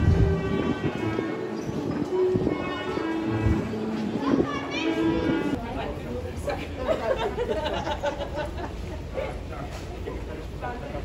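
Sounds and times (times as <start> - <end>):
live music held notes: 0.0 - 5.6
crowd chatter: 0.0 - 11.0.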